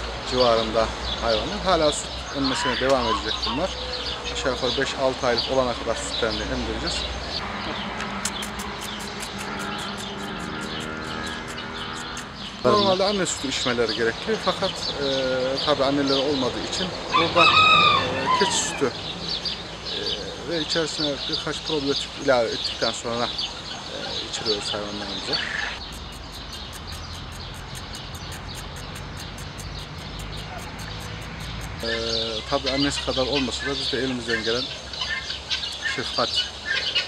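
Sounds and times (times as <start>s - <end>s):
fast high ticking: 25.8s - 31.9s.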